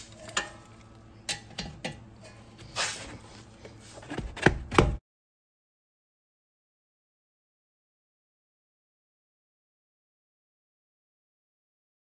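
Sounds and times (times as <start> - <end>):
metal scrape: 0.0 - 1.0, 2.2 - 4.0.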